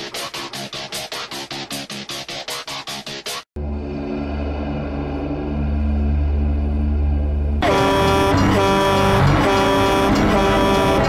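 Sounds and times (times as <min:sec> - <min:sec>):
low eerie music drone: 0:03.6 - 0:11.0
soundtrack music: 0:03.6 - 0:11.0
traffic noise: 0:05.8 - 0:11.0
vehicle horn blaring: 0:07.6 - 0:11.0.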